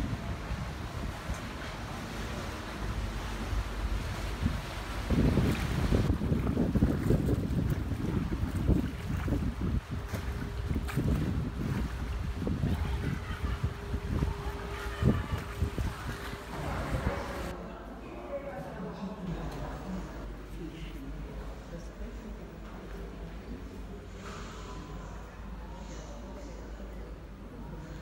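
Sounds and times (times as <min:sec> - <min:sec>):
wind buffeting microphone: 0:00.0 - 0:17.5.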